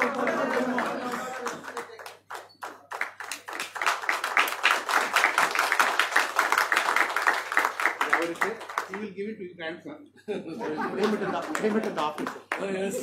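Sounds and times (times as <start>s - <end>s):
audience applause: 0.0s - 9.0s, 10.8s - 13.0s.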